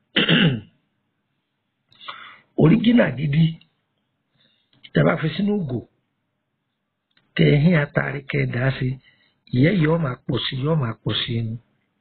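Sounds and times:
man clearing throat: 0.1 - 0.8.

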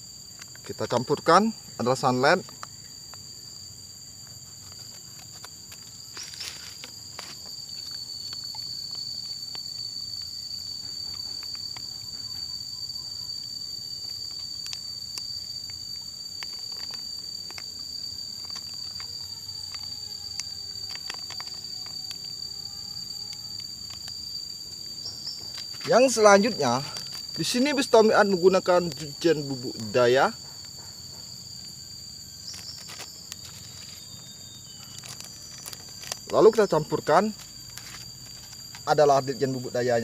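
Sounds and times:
high-pitched insect drone: 0.0 - 40.0.

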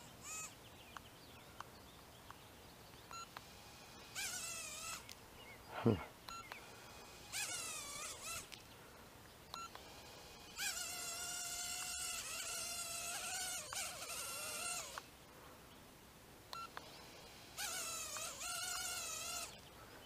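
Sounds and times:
tiny drone motors whining: 0.0 - 0.6, 3.1 - 5.6, 6.3 - 8.8, 9.5 - 15.1, 16.5 - 19.8.

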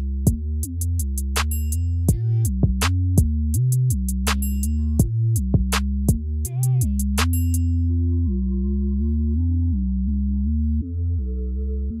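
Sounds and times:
low synth tones: 6.1 - 12.0.

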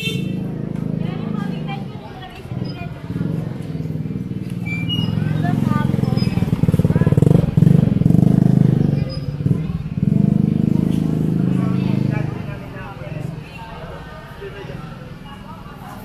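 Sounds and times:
motorcycle engine running: 0.0 - 13.5
people talking: 0.0 - 16.0.

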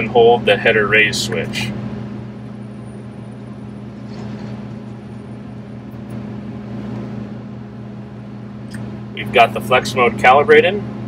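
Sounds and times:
combine engine low hum: 0.0 - 11.0.

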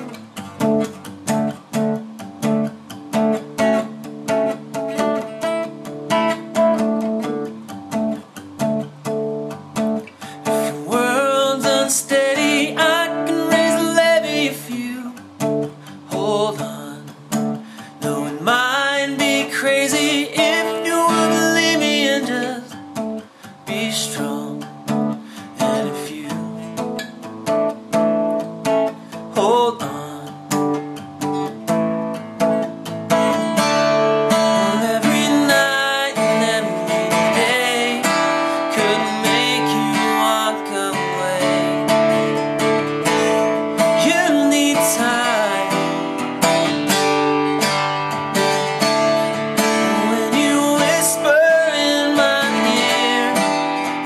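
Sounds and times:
man singing: 0.0 - 0.2, 10.4 - 27.0, 29.3 - 30.8, 33.1 - 46.8, 48.5 - 54.0
acoustic guitar strumming: 0.0 - 54.0.

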